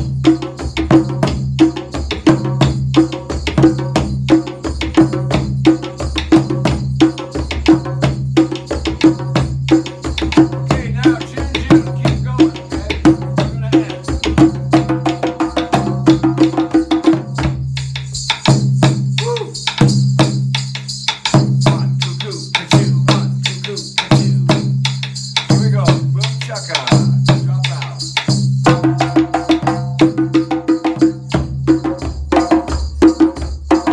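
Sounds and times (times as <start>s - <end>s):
hand drums playing: 0.0s - 33.9s.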